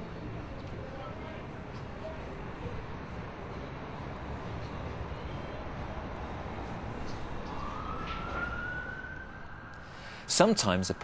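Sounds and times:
low traffic rumble: 0.0s - 11.0s
siren wailing: 7.3s - 11.0s.

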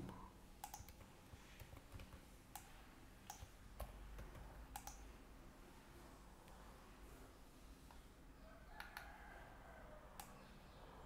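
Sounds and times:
computer keyboard keystrokes: 0.0s - 5.0s
low steady hum: 0.0s - 11.0s.

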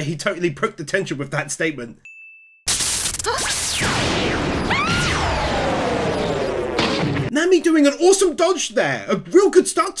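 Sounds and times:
single-tone ding chime: 2.0s - 2.6s
long falling tone: 3.8s - 7.2s.

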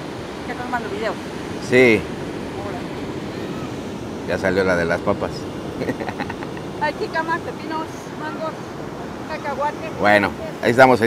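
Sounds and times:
steady rush of noise: 0.0s - 11.0s
people talking: 0.5s - 2.0s, 6.8s - 8.6s, 9.3s - 11.0s.

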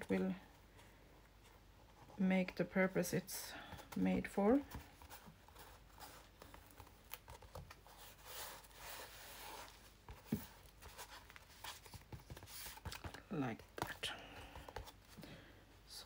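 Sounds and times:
hands rubbing fabric and paper: 4.9s - 13.2s.

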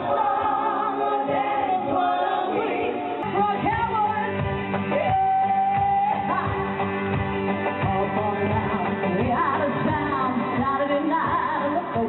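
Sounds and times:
woman singing into a microphone: 0.0s - 6.8s, 7.7s - 12.0s
amplified backing music: 0.0s - 12.0s.

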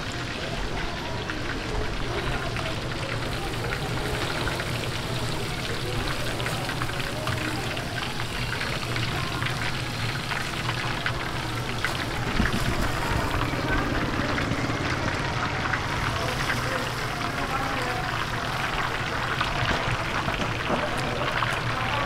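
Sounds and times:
food deep-frying in hot oil: 0.0s - 22.0s.

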